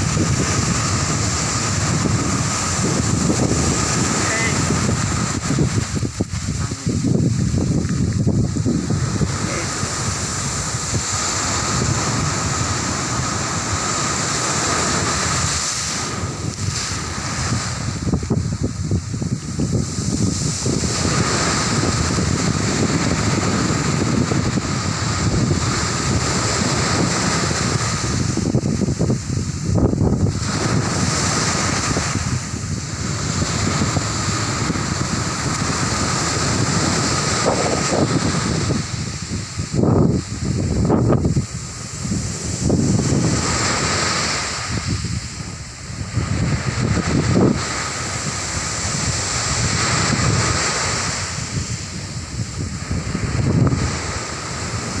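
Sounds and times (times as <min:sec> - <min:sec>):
surf breaking on beach: 0:00.0 - 0:55.0
wind buffeting microphone: 0:00.0 - 0:55.0.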